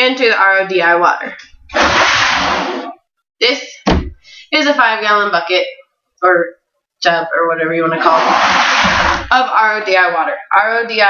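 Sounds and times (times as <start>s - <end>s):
plastic jug rustling scrape: 1.5s - 3.0s, 8.0s - 9.4s
jug thump: 3.8s - 4.2s.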